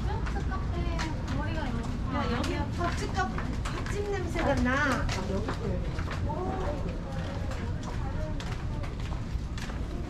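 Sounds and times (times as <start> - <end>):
low rumble of street ambience: 0.0 - 10.0
passersby talking: 0.0 - 10.0.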